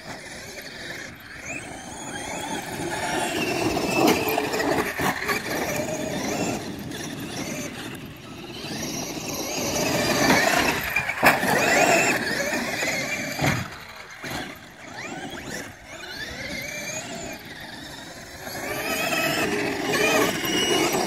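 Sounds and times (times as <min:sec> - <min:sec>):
electric motors whining: 0:00.0 - 0:21.0
tyres churning dirt: 0:00.0 - 0:21.0.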